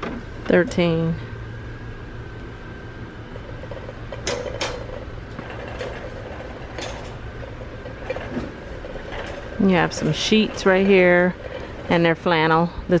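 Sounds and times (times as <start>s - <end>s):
steady background hum: 0.0s - 13.0s
shopping cart wheels rattling: 3.4s - 13.0s.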